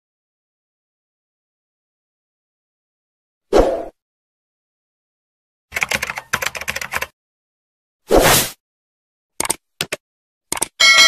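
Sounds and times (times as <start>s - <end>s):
keyboard key clicks: 9.4s - 10.8s.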